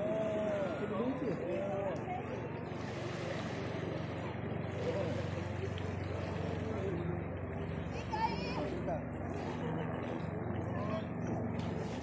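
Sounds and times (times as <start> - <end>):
faint voices: 0.0 - 12.0
small waves washing ashore: 0.0 - 12.0.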